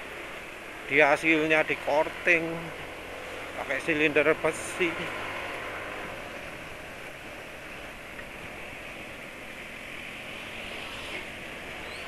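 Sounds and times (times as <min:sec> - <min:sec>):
road noise: 0:00.0 - 0:12.0
scooter engine hum: 0:00.0 - 0:12.0.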